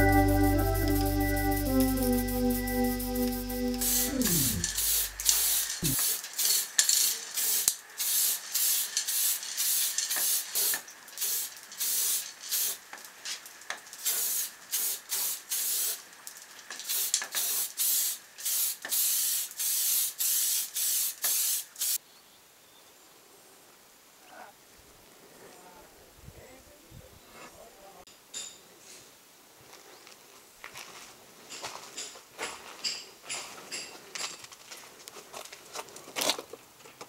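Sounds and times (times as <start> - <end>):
spray paint can spraying: 0.8 - 12.8, 14.0 - 16.0, 16.8 - 22.0.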